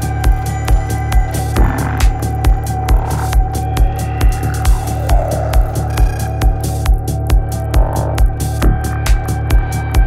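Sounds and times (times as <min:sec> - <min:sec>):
bassline: 0:00.0 - 0:10.0
kick drum: 0:00.0 - 0:10.0.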